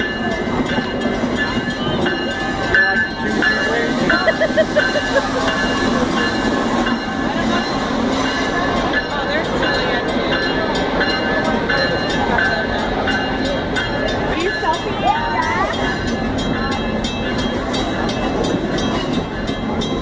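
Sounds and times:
crowd chatter: 0.0 - 20.0
train rumbling past: 0.0 - 20.0.

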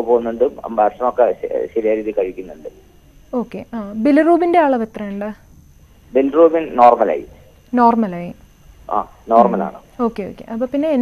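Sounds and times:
person speaking over telephone: 0.0 - 2.7, 8.9 - 9.8.

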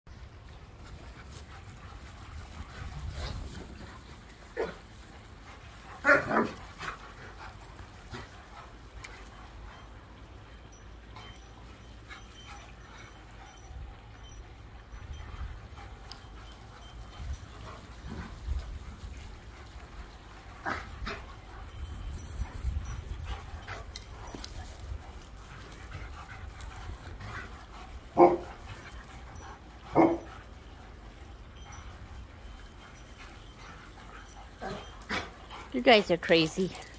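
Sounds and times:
dogs playing rough: 0.1 - 36.9
dog barking: 6.0 - 6.6, 28.2 - 28.4, 29.9 - 30.3.

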